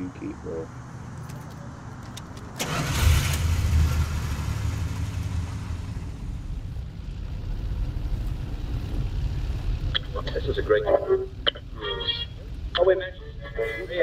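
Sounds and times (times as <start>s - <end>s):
car engine starting and running: 0.7s - 14.0s
keys jangling: 1.2s - 2.5s.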